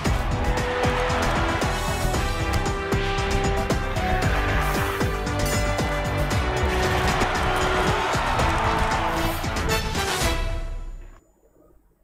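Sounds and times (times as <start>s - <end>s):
news theme music: 0.0s - 11.1s.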